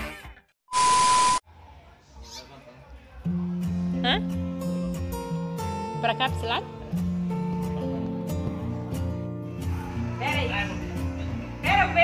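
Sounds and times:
short electronic beep: 0.7 - 1.4
background music: 3.2 - 12.0
music with steady bass notes: 3.5 - 12.0.

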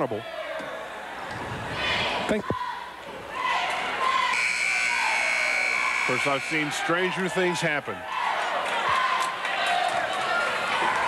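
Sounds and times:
crowd and cheerleader voices: 0.0 - 11.0
high-pitched buzzer tone: 4.4 - 6.7.

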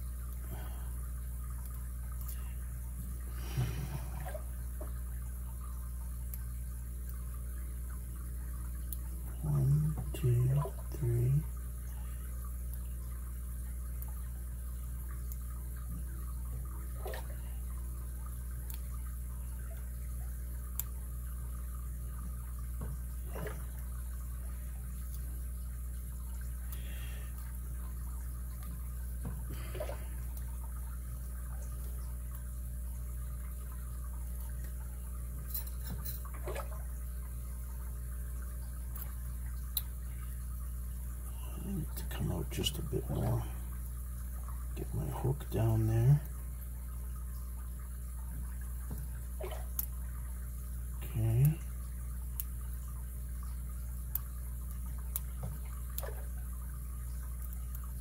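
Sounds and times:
steady low hum: 0.0 - 58.0
person murmuring: 9.4 - 11.5, 41.4 - 43.6.

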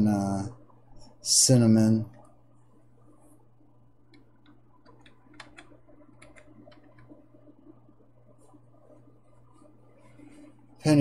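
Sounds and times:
low steady hum: 0.0 - 11.0
small clicks and ticks: 4.1 - 7.2.

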